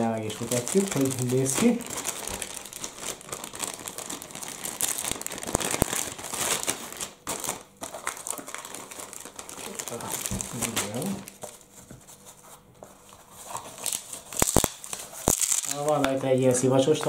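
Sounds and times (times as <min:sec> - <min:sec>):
plastic bag crinkling: 0:00.0 - 0:11.7, 0:13.5 - 0:17.0.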